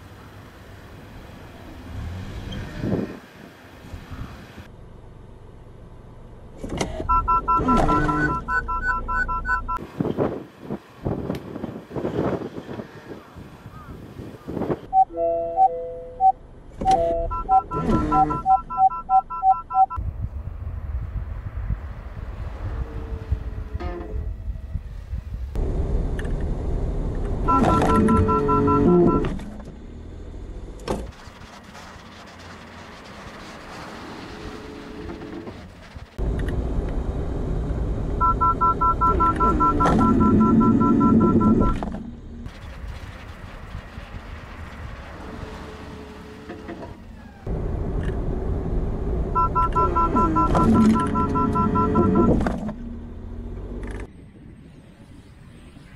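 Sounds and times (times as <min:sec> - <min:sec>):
car road and tyre noise: 0:00.0 - 0:55.9
rapid two-tone warning beeps: 0:07.1 - 0:09.8, 0:17.0 - 0:20.0, 0:27.5 - 0:29.3, 0:38.2 - 0:41.8, 0:49.4 - 0:52.4.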